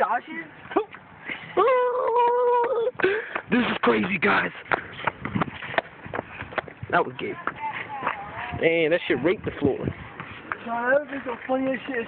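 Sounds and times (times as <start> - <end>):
footsteps on asphalt: 2.6 - 12.0.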